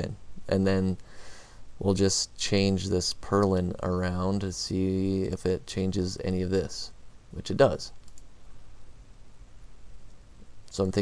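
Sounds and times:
low room hum: 0.0s - 11.0s
computer mouse clicking: 8.0s - 8.3s.

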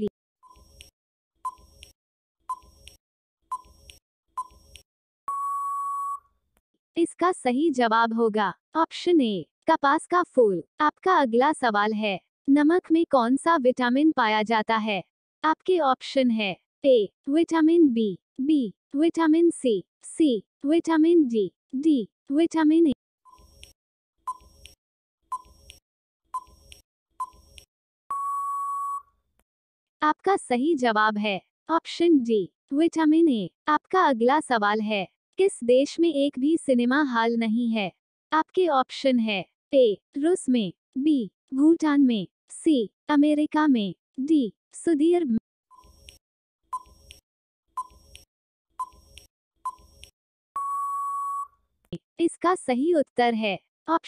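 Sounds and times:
short timer beeps: 2.5s - 2.8s, 47.8s - 48.1s, 48.8s - 49.9s, 50.6s - 51.5s
long steady beep: 5.3s - 6.2s, 28.1s - 29.1s, 50.6s - 51.5s.

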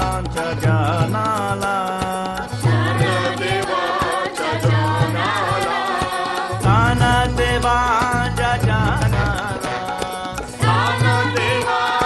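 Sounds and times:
devotional song singing: 0.0s - 12.0s
steady percussion: 0.0s - 12.0s.

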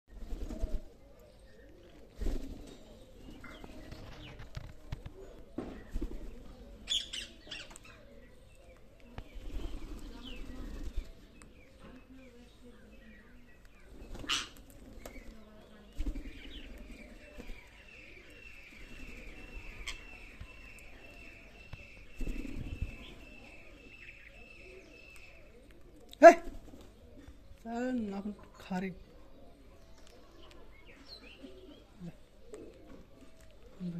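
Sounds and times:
bird wings flapping: 0.1s - 0.9s, 2.1s - 2.7s, 3.6s - 5.2s, 9.3s - 11.2s, 14.0s - 17.7s, 22.1s - 23.2s
bird chirping: 2.6s - 26.3s, 27.0s - 33.9s.

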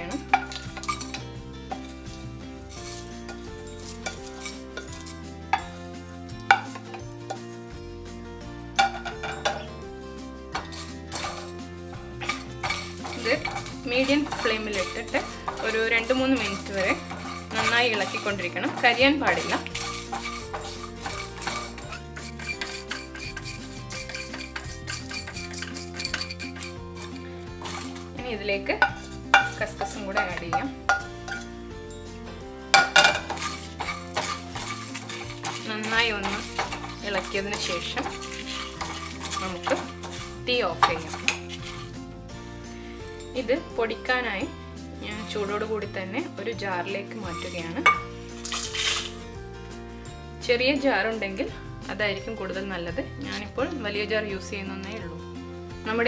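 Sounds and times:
background music: 0.0s - 56.0s
dry spices rattling into a pan: 0.3s - 5.6s, 10.5s - 28.2s, 32.7s - 42.0s, 47.2s - 49.2s.

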